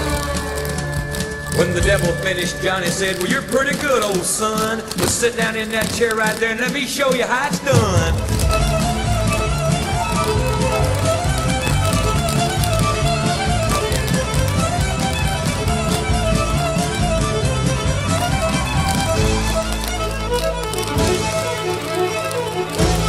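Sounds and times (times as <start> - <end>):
bass and drums: 7.7 - 19.7
fast fiddle solo: 8.3 - 23.0.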